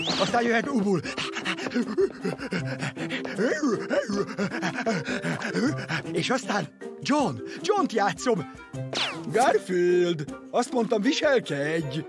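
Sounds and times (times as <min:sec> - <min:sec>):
person imitating dog panting: 0:00.3 - 0:06.3.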